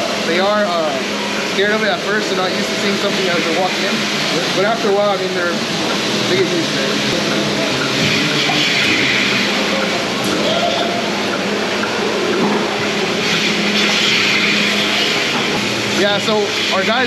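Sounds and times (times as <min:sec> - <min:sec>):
faint voices: 0:00.0 - 0:17.0
machinery hum: 0:00.0 - 0:17.0
milking equipment and fans rushing: 0:00.0 - 0:17.0.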